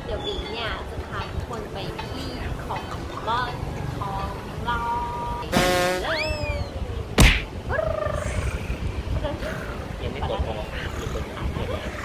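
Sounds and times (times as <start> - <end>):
cartoon whack: 5.5 - 6.1, 7.2 - 7.5.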